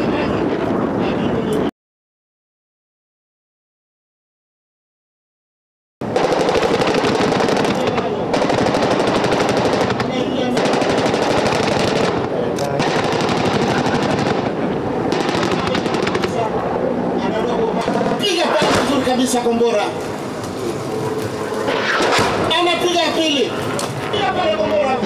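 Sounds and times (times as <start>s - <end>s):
machine-gun fire: 6.0s - 16.5s, 17.9s - 19.3s, 21.7s - 22.8s.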